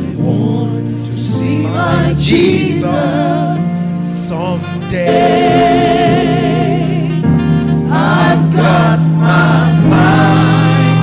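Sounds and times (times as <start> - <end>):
gospel singing: 0.0 - 11.0
instrumental accompaniment with bass: 0.0 - 11.0.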